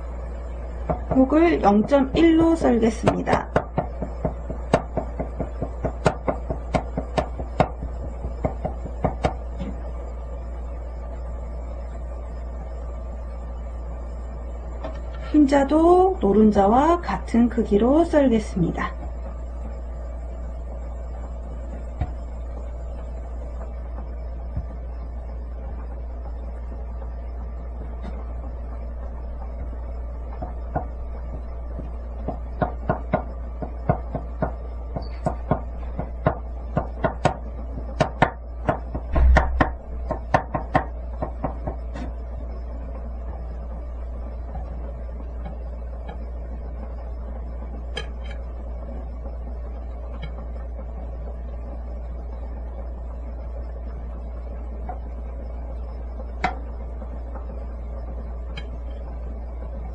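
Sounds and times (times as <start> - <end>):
steady low hum: 0.0 - 59.9
knife knocking on cutting board: 39.0 - 41.8.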